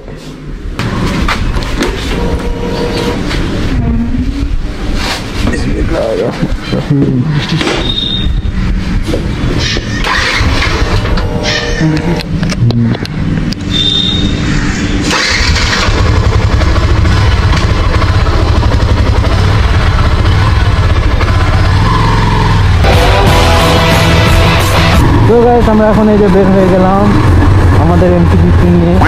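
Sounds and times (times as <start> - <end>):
motorcycle engine running: 15.4 - 29.0
background music: 22.8 - 25.4.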